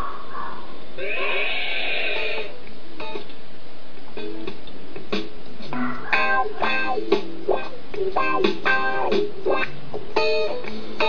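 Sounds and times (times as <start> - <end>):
cartoon animal-like cry: 0.0 - 2.5
steady hiss: 0.0 - 11.0.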